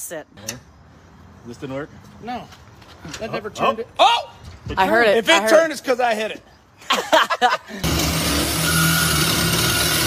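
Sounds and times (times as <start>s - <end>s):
reciprocating saw cutting metal: 7.8s - 10.0s.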